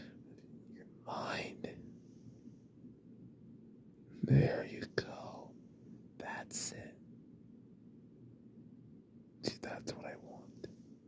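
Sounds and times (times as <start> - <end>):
man whispering: 0.7 - 1.8, 4.2 - 5.6, 6.2 - 6.9, 9.4 - 10.8.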